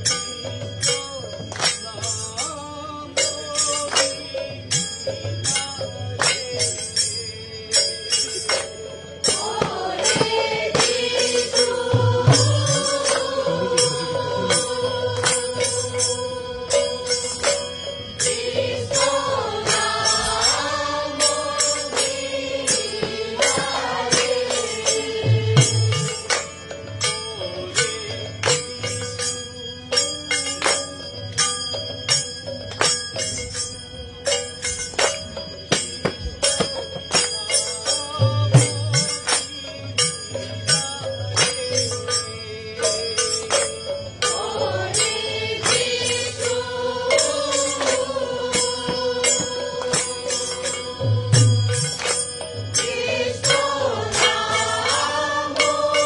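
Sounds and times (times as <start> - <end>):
group singing a chant: 5.5 - 29.3, 35.2 - 56.0
drum strikes: 8.4 - 29.2, 34.4 - 37.4, 43.6 - 56.0
group chanting on a held note: 9.3 - 17.6, 18.3 - 26.2.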